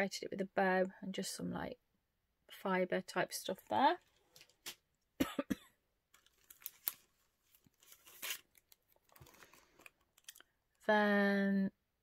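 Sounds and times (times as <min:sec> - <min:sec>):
person coughing: 0:05.2 - 0:05.8
craft pieces rustling: 0:06.1 - 0:10.5.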